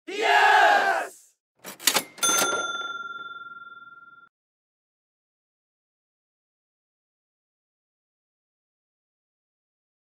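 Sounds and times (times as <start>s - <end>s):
short shouted voice: 0.0s - 1.4s
bright bell ding: 2.0s - 4.3s.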